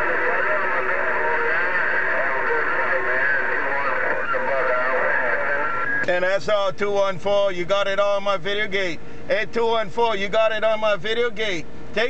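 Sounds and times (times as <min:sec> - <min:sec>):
radio static: 0:00.0 - 0:06.4
voice over radio speaker: 0:00.0 - 0:12.0.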